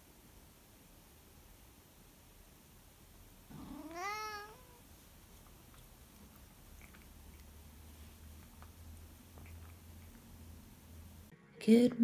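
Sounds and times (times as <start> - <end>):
cat meowing: 3.6 - 4.9.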